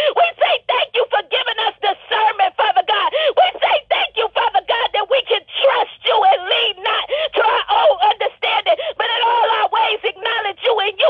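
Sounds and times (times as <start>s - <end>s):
person praying over telephone: 0.0s - 11.0s.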